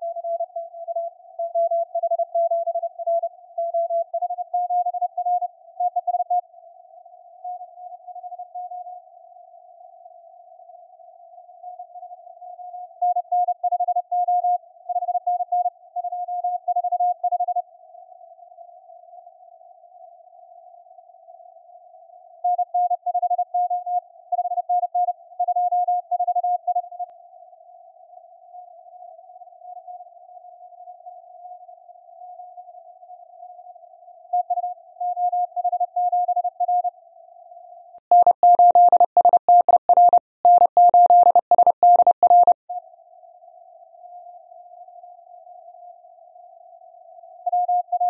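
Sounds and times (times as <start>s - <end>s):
morse code tone keying: 38.1s - 42.6s.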